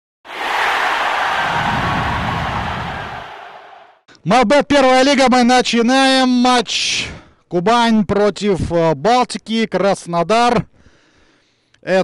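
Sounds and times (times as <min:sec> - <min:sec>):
loud rush of noise: 0:00.3 - 0:04.0.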